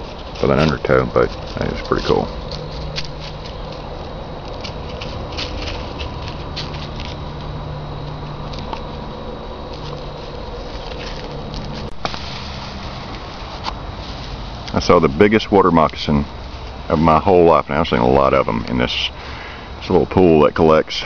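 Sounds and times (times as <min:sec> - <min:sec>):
footsteps through dry leaves: 0:00.0 - 0:15.2
steady background hiss: 0:00.0 - 0:21.0.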